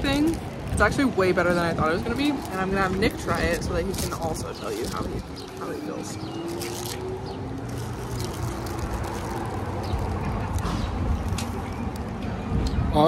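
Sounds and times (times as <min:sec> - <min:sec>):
wind buffeting microphone: 0:00.0 - 0:13.0
paper wrapper crinkling: 0:01.9 - 0:12.2.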